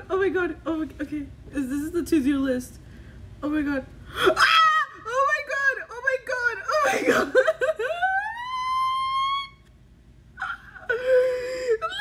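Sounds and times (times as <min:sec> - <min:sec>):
woman squealing excitedly: 0:04.3 - 0:05.3, 0:06.6 - 0:09.6, 0:10.4 - 0:12.0.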